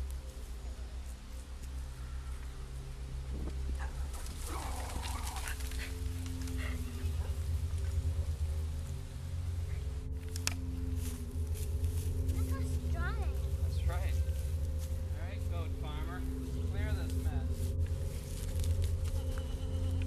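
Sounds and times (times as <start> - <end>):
low sustained background music: 0.0 - 20.0.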